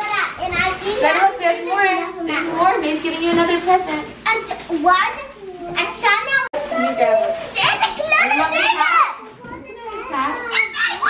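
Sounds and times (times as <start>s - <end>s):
children chattering excitedly: 0.0s - 2.6s, 4.1s - 11.0s.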